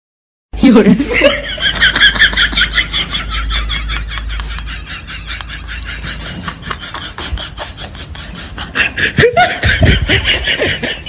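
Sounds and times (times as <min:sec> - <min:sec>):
person laughing: 0:00.8 - 0:11.0.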